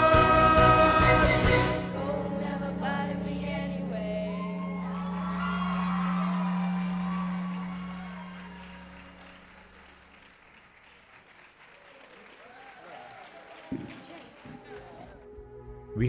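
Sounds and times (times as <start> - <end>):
audience applause: 4.8 - 15.2.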